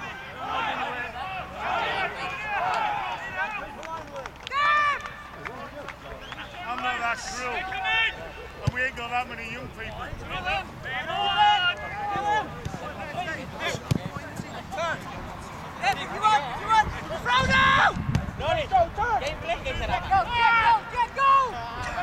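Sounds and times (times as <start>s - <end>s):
players shouting: 0.0s - 22.0s
loud high shout: 4.5s - 5.3s, 10.4s - 12.6s, 16.7s - 18.0s, 20.0s - 22.0s.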